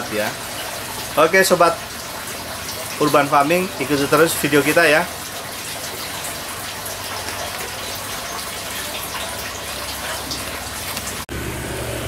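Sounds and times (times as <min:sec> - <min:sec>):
running splashing water: 0:00.0 - 0:12.0.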